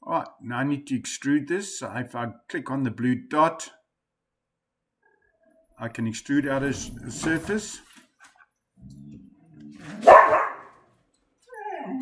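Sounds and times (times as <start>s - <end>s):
dog barking loudly: 10.0s - 10.8s.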